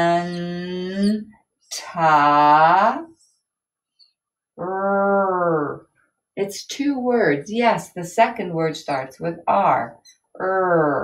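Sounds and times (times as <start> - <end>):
woman drawing out syllables: 0.0 - 3.1, 4.6 - 5.8, 6.4 - 11.0.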